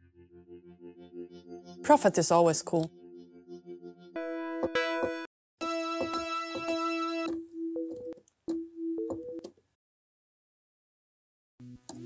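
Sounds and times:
synthesizer chord and notes: 0.0 - 9.4.

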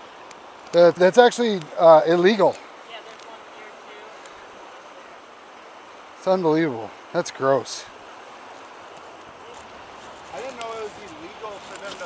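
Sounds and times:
white water rushing through rapids: 0.0 - 12.0.

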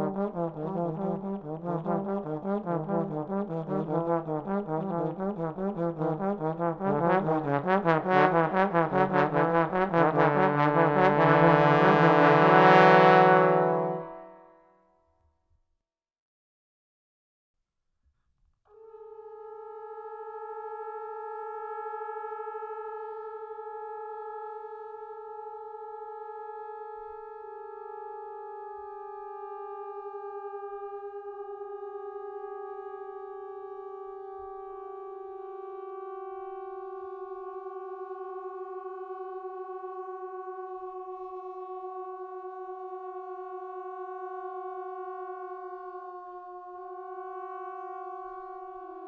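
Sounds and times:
trombones holding a chord: 0.0 - 14.5.

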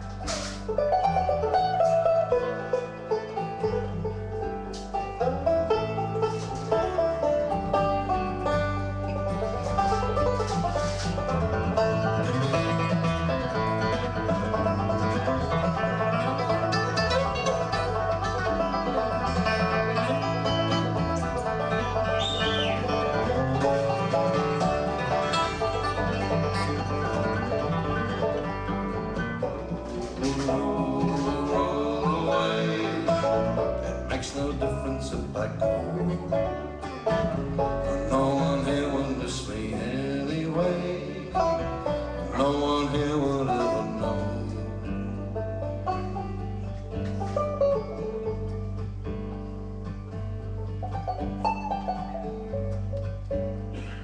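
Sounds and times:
acoustic guitar: 0.0 - 54.0
banjo picking: 0.0 - 54.0
bass guitar: 0.0 - 54.0.

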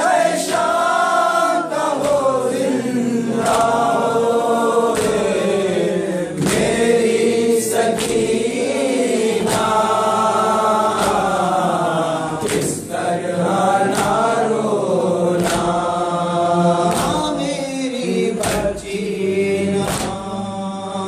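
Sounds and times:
men chanting in unison: 0.0 - 21.0.

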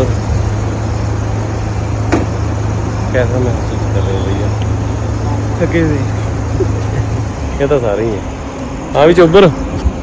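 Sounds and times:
roadside traffic rumble: 0.0 - 10.0.

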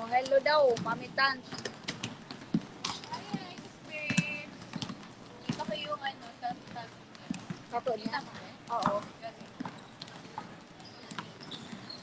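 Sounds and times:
basketballs bouncing on court: 0.0 - 12.0
voices talking: 2.9 - 4.7.

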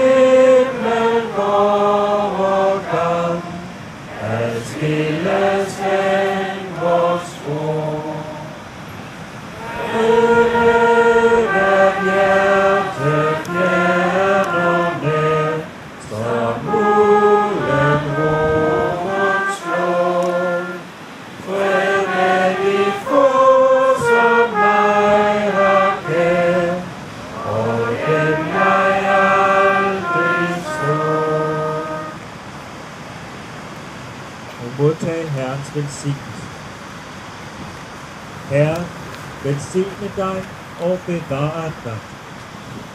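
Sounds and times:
trumpet slow melody: 0.0 - 8.6, 9.5 - 32.3
surf rushing: 0.0 - 42.9.

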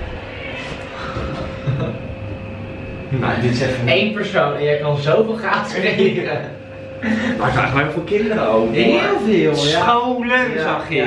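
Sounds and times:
elevator hum: 0.0 - 11.0
faint elevator whine: 0.0 - 11.0.

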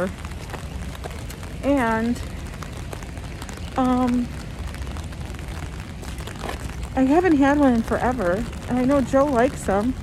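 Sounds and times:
rain on umbrella: 0.0 - 10.0
steady low rumble: 0.0 - 10.0.

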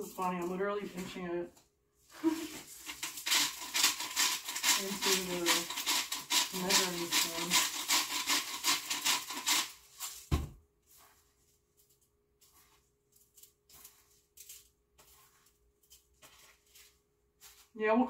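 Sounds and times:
salt grinding in spoon: 2.4 - 10.2, 10.9 - 17.7.

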